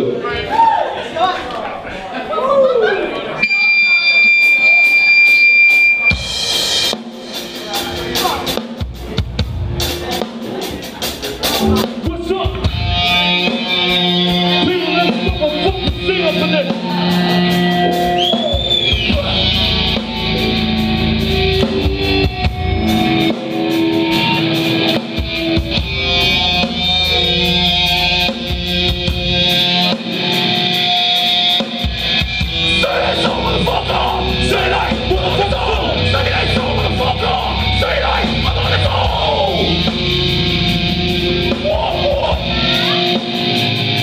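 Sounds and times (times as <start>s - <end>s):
electric guitars and bass chords: 3.4s - 44.0s
pounding drum kit: 4.4s - 44.0s.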